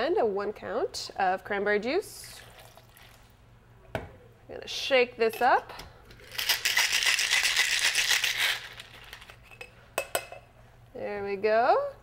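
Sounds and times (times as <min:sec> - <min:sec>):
ice rattling in cocktail shaker: 0:06.3 - 0:09.4.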